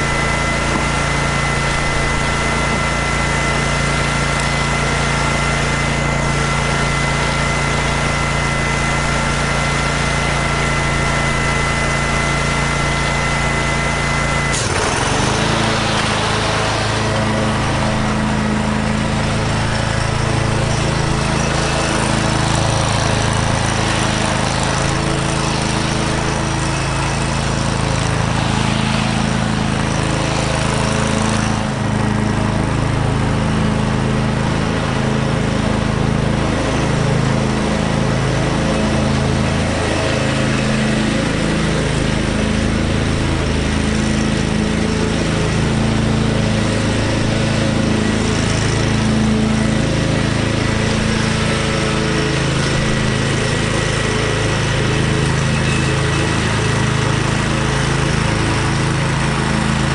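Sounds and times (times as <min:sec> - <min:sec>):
lawn mower engine running: 0:00.0 - 0:59.9.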